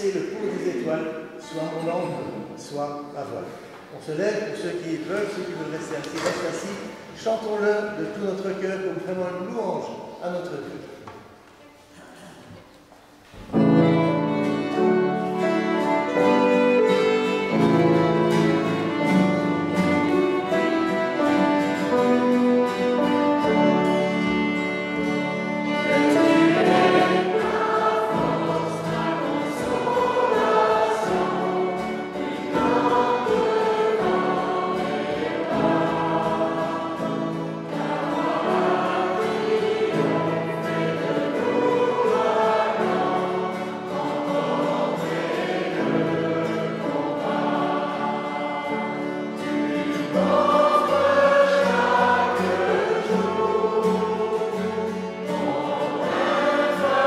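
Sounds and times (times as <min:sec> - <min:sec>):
congregation singing worship song: 0:00.0 - 0:57.0.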